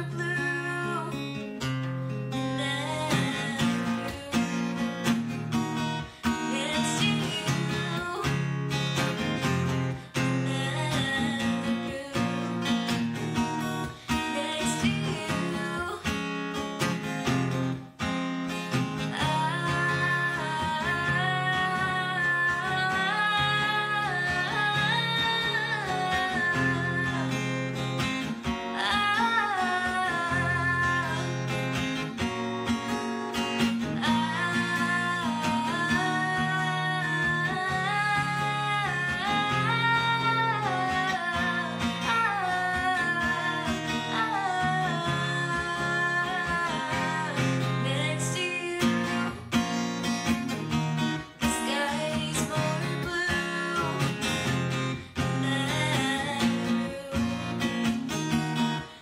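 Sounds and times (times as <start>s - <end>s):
strummed acoustic guitar: 0.0s - 59.0s
woman singing: 0.0s - 59.0s.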